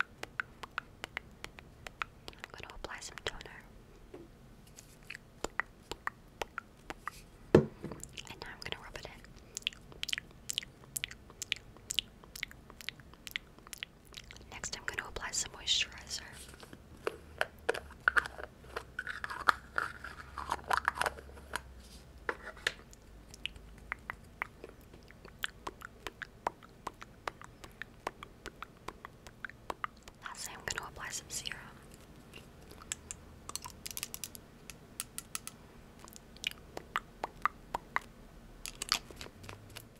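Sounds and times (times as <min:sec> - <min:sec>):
soft wet clicks: 0:00.0 - 0:03.6, 0:08.0 - 0:15.7, 0:22.8 - 0:39.9
dull thump: 0:07.5 - 0:08.0.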